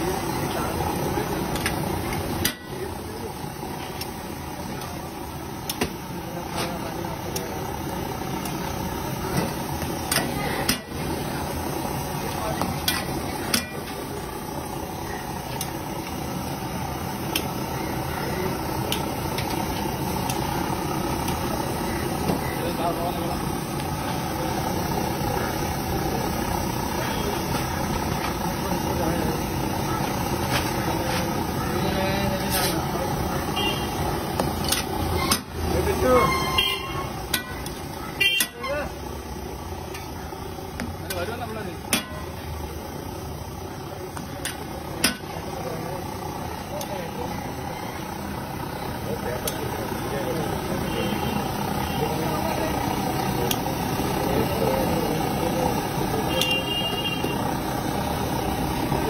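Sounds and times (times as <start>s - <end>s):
traffic noise: 0.0s - 59.0s.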